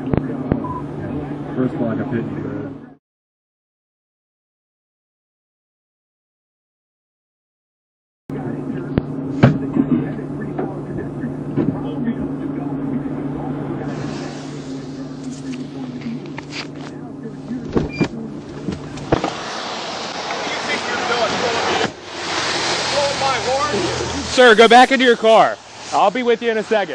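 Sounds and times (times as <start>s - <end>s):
car engine humming: 0.0s - 2.9s, 8.3s - 26.9s
hiss of wet road noise: 13.8s - 15.9s, 19.0s - 26.9s.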